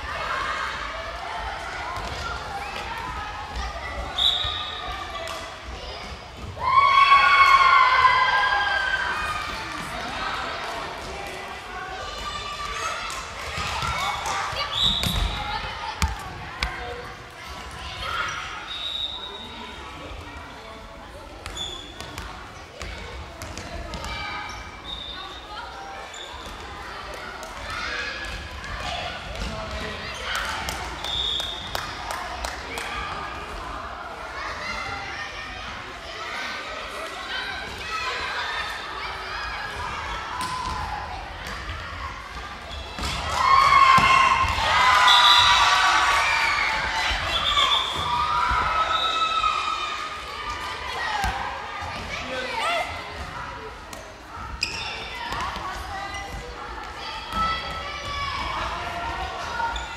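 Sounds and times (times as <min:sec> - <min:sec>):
loud shout: 0:06.5 - 0:10.4, 0:43.1 - 0:50.2
ball bouncing on hall floor: 0:16.0 - 0:16.8.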